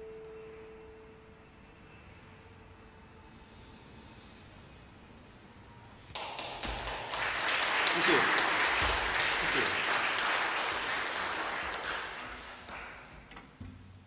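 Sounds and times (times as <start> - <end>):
audience applauding: 6.1 - 13.2.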